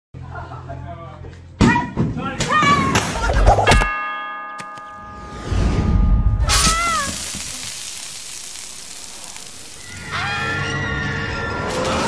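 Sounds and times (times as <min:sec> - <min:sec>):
short wavering cry: 0:06.4 - 0:07.3
hiss: 0:06.5 - 0:10.1.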